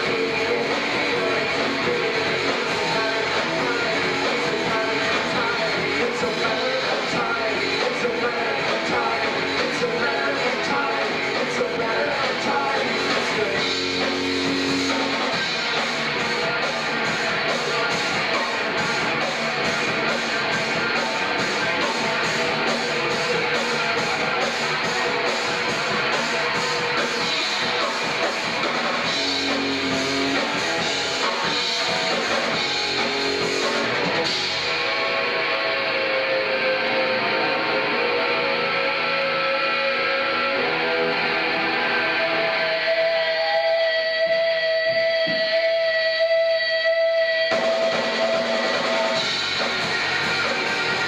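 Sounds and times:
live rock band playing: 0.0 - 51.0.

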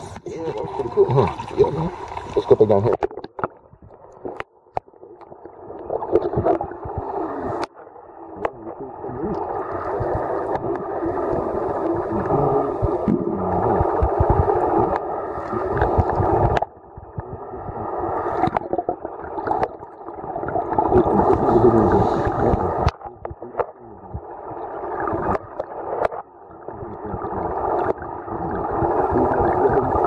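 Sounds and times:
underwater churning water and bubbles: 0.0 - 30.0.

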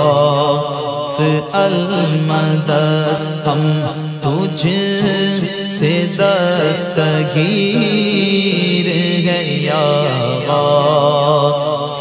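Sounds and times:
male voices chanting: 0.0 - 12.0.

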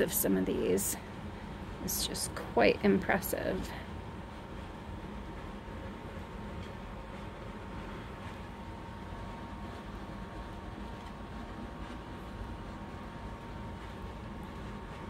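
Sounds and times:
low hum and hiss: 0.0 - 15.0.

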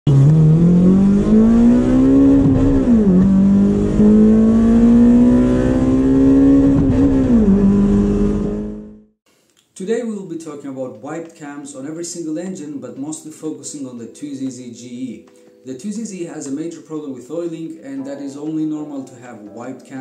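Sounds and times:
car engine accelerating: 0.1 - 9.1.

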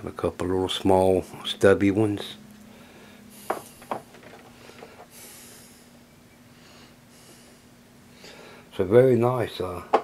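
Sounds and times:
faint steady hum: 0.0 - 10.0
nasal breath: 4.5 - 6.0.

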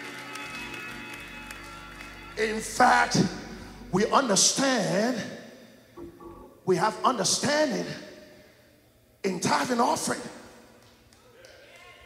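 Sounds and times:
congregation clapping: 0.0 - 3.3
keyboard sustained chords: 0.0 - 7.8
low bass note: 6.0 - 6.7.

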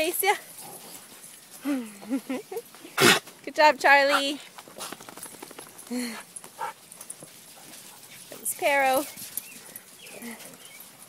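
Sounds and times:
woman laughing: 1.6 - 2.8.

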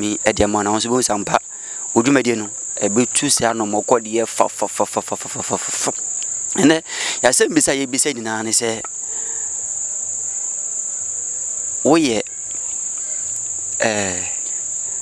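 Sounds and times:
men talking: 0.0 - 9.0, 11.8 - 12.3, 13.8 - 14.5
crickets chirring: 0.0 - 15.0.

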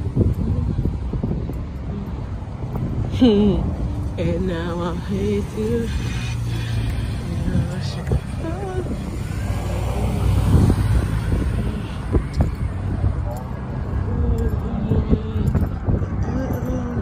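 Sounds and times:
cars driving past: 0.0 - 17.0
low traffic rumble: 0.0 - 17.0.

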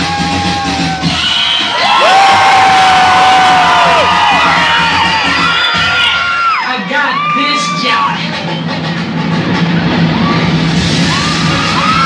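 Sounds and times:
crowd cheering and shouting: 0.0 - 12.0
loud live music: 0.0 - 12.0.

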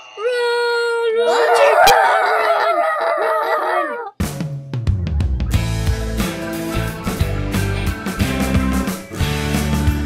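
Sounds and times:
voices crying out: 0.2 - 4.1.

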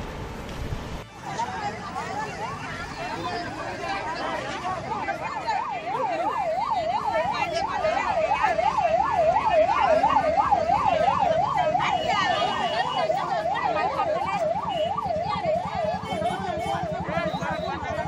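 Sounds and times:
ambulance siren wailing: 1.6 - 18.0.

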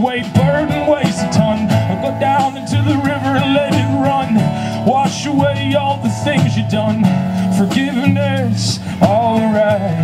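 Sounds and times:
acoustic guitar strumming: 0.0 - 10.0.

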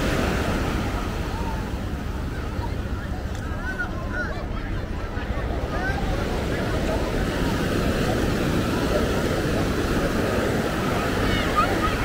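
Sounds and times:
faint voices: 0.0 - 12.0
small surf waves breaking: 0.0 - 12.0.

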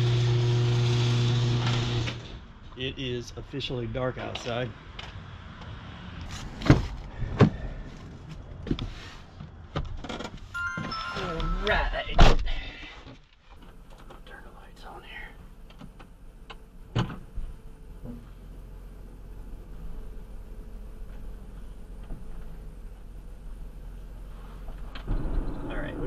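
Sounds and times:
van idling low rumble: 13.6 - 26.0.

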